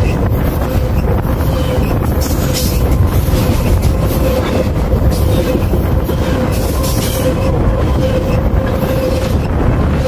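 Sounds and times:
train wheels rumbling overhead: 0:00.0 - 0:10.0.

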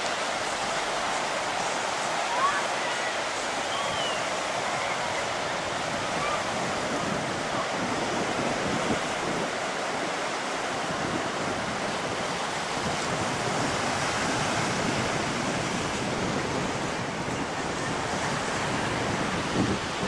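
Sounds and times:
waves breaking on rocks: 0:00.0 - 0:20.0
wind buffeting microphone: 0:03.3 - 0:20.0.

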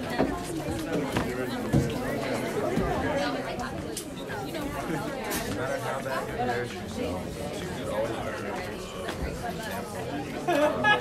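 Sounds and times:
students talking: 0:00.0 - 0:11.0.

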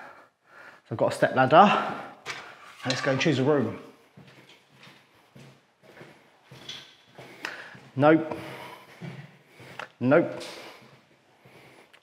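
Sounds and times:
ladder knocking and rattling: 0:02.2 - 0:05.0
footsteps on hard floor: 0:02.3 - 0:12.0.

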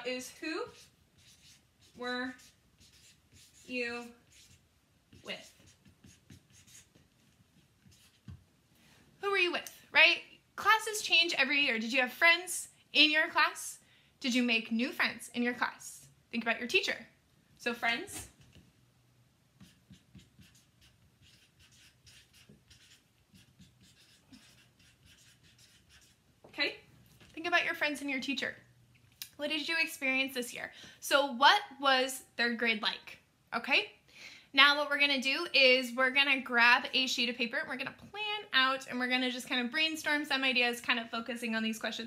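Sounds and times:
marker scratching on paper: 0:00.5 - 0:08.4, 0:19.6 - 0:26.2.

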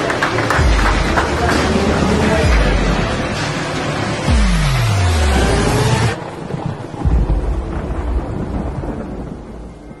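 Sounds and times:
thunder rumble: 0:05.1 - 0:10.0.

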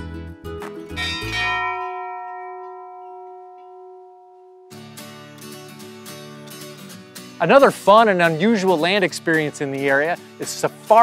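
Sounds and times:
background music with bass line: 0:00.0 - 0:01.7.

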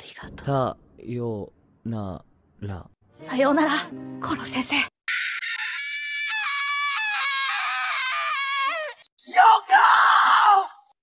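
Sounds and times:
high-pitched wailing cry: 0:05.1 - 0:09.1.

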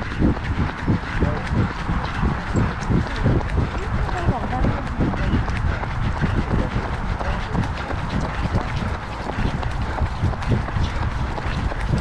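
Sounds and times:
runners' footfalls on tarmac: 0:00.0 - 0:12.0
thuds of running stride on microphone: 0:00.0 - 0:12.0.

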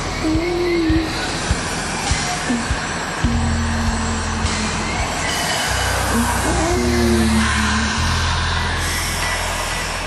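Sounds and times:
live band low bass note: 0:00.0 - 0:09.7.

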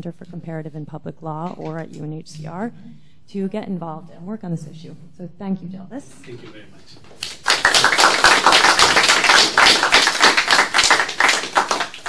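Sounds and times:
audience applauding: 0:07.2 - 0:12.0.

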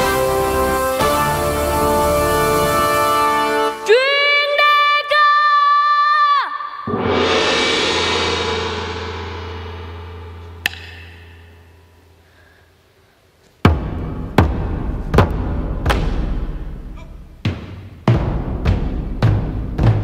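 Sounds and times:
heavy drum strikes: 0:06.9 - 0:12.0, 0:13.7 - 0:20.0
gong crash: 0:06.9 - 0:12.1.

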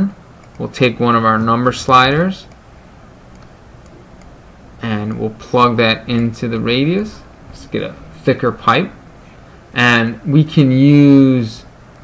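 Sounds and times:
man talking: 0:00.0 - 0:02.5, 0:04.8 - 0:09.0, 0:09.7 - 0:11.7
computer mouse clicks: 0:00.4 - 0:00.7, 0:03.3 - 0:04.3.

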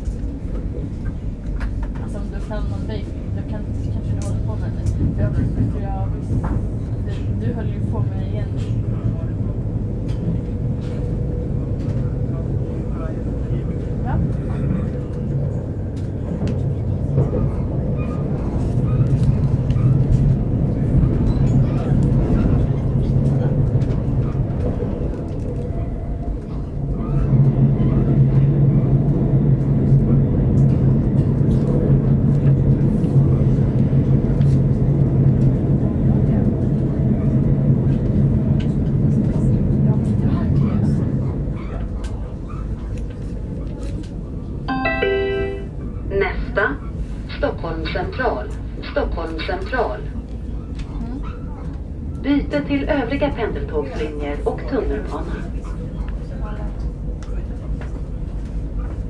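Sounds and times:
train rumble and motor hum: 0:00.0 - 0:59.0.

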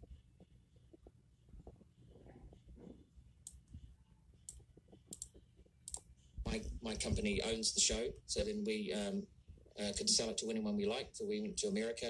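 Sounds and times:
computer mouse clicking: 0:04.4 - 0:06.1.

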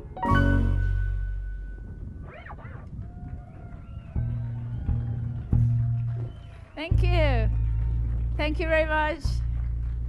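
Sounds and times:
jazz piano trio chord: 0:00.0 - 0:01.9
held electric bass note: 0:00.0 - 0:03.0.

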